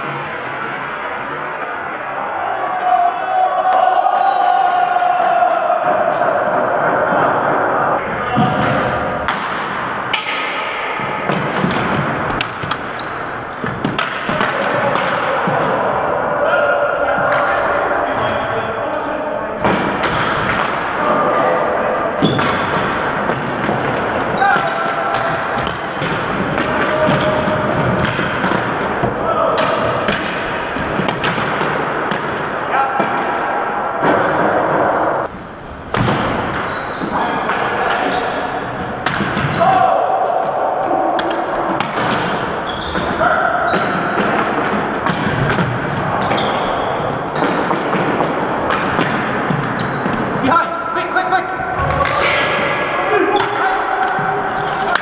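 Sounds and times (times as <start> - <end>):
players shouting: 0.0 - 55.0
hockey sticks clacking: 8.3 - 55.0.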